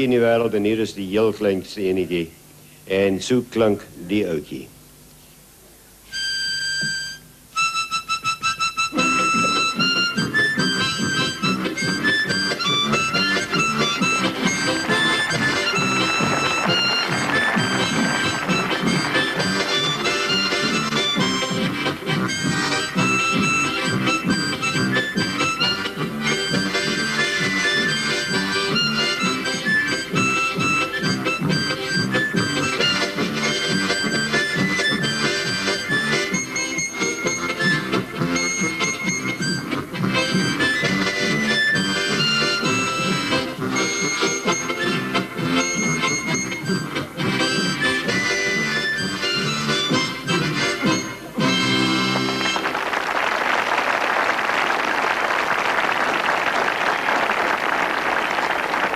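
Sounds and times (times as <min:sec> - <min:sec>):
chord and bass harmonicas: 0:06.0 - 0:53.3
harmonica melody: 0:06.0 - 0:58.9.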